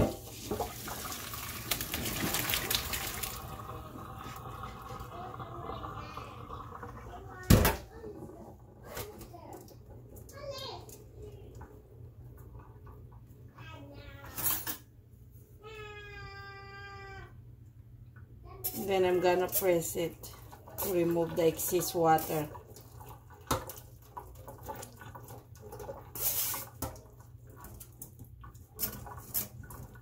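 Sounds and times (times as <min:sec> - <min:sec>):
water pouring into metal colander: 0:00.2 - 0:07.2, 0:18.8 - 0:30.0.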